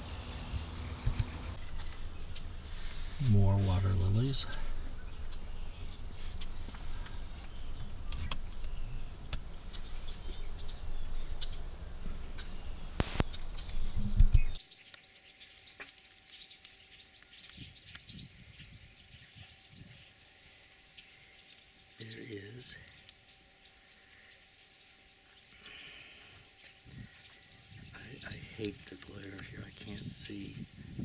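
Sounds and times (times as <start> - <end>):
steady low rumble: 0.0 - 14.6
faint steady hum: 0.0 - 31.0.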